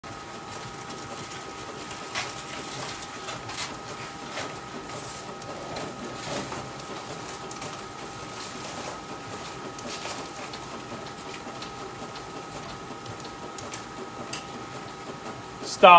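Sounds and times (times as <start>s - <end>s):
bat rolling machine rubbing: 0.2s - 15.6s.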